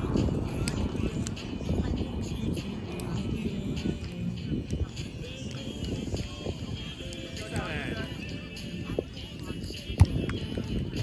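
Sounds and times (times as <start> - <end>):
players' voices: 0.1 - 11.0.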